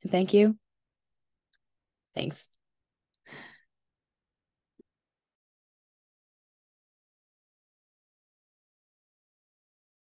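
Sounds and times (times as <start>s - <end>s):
woman exhaling: 3.3s - 3.6s.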